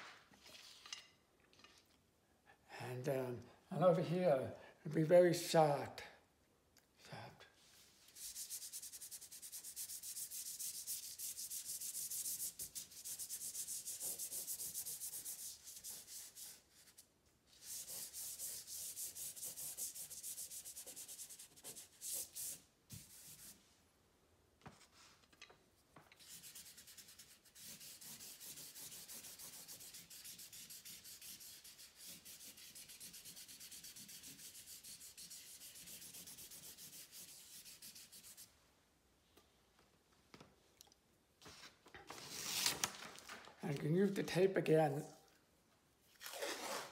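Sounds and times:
charcoal scratching on paper: 8.1s - 23.6s, 26.2s - 38.5s.

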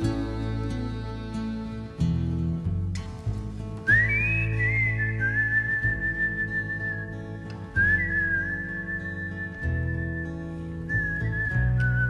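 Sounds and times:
whistled melody: 0.0s - 2.4s, 3.8s - 12.0s
acoustic guitar accompaniment: 0.0s - 12.0s.

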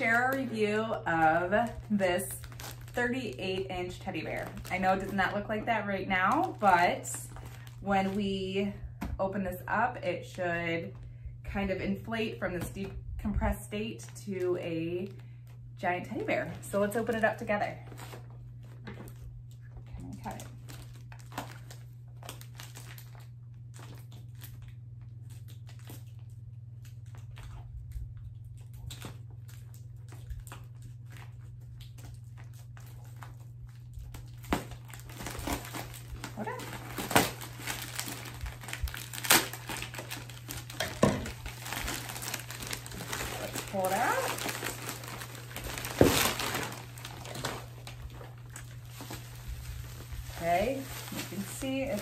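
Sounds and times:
plastic packaging crinkling: 0.0s - 8.8s, 14.0s - 52.0s
steady low hum: 0.0s - 52.0s.

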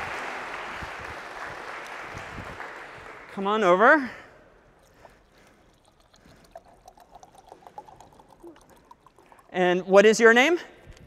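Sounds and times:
liquid poured into a glass: 4.8s - 10.2s.

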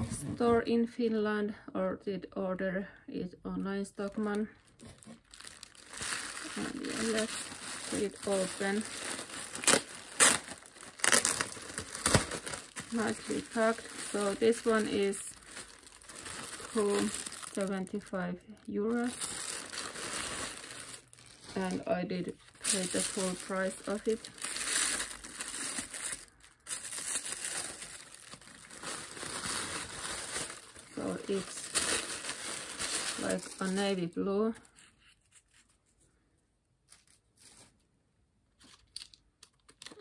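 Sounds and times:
plastic wrapping crinkling: 4.0s - 35.9s.

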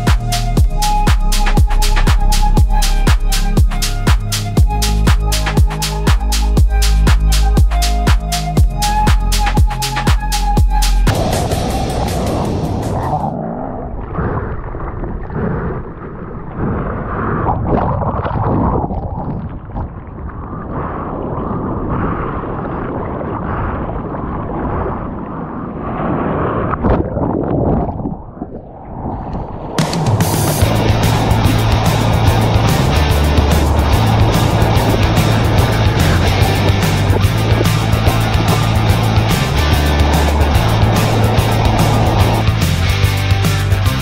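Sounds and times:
music with drum beat and bass: 0.0s - 13.0s, 29.8s - 44.0s
muffled water and surf rushing: 0.0s - 44.0s.

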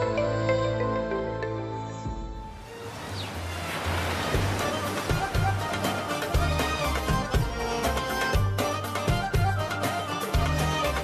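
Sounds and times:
ocean surf washing onto beach: 2.6s - 8.4s
music with low bass notes: 4.4s - 11.0s.

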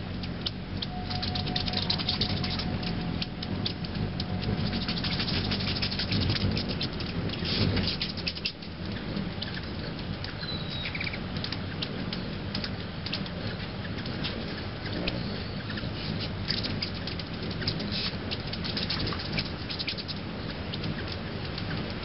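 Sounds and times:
hummingbird wings humming: 0.0s - 22.0s
rapid bird ticks and chips: 0.0s - 22.0s
high bird note: 0.8s - 5.7s.

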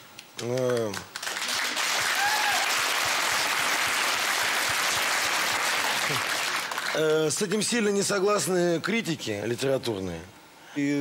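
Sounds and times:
audience applauding: 0.4s - 7.7s.

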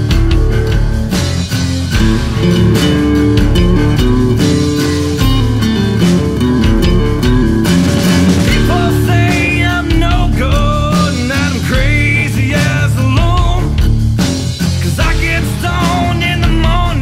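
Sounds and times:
bass guitar: 0.0s - 17.0s
guitar riff: 0.0s - 17.0s
steady drum beat: 0.0s - 17.0s.

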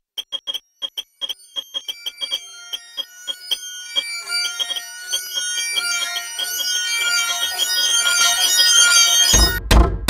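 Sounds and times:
held electronic tones: 0.0s - 9.6s
short high electronic beeps: 0.0s - 9.6s.

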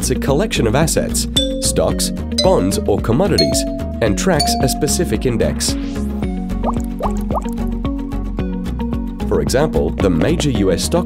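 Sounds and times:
background music with steady beat: 0.9s - 10.6s.

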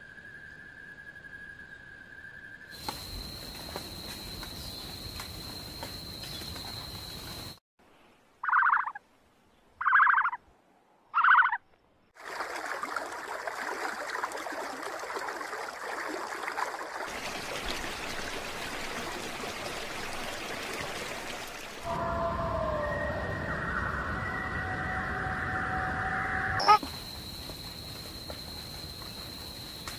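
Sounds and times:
steady watery noise: 12.2s - 22.2s.

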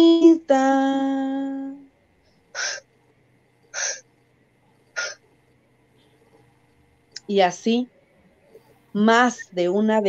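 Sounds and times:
breathy puffs of air: 2.5s - 2.8s, 3.7s - 4.0s.

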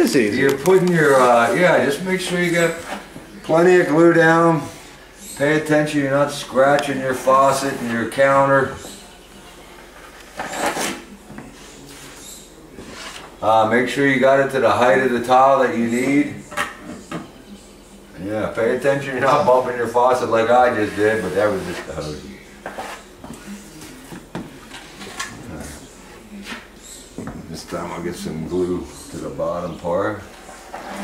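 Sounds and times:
trowel scraping tile mastic: 20.7s - 23.1s, 30.3s - 31.0s
trowel scraping plastic tub: 30.3s - 31.0s.

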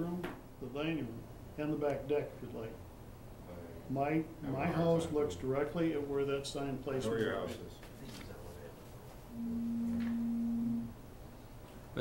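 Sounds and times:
steady low pure tone: 9.3s - 11.0s.

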